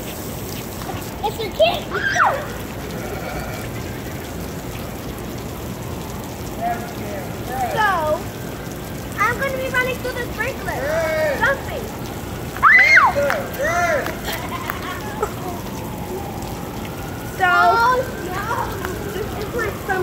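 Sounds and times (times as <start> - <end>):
water jet spraying onto street: 0.0 - 20.0
children shrieking: 1.8 - 4.0, 10.7 - 11.6, 12.6 - 15.8.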